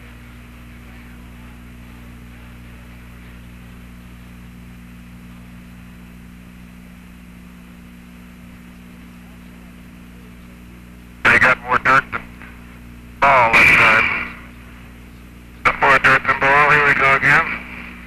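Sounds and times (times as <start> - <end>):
radio hiss and electrical hum: 0.0 - 18.0.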